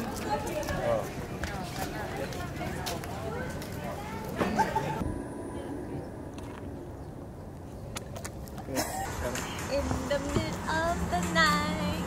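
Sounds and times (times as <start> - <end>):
low outdoor rumble: 1.1 - 12.0.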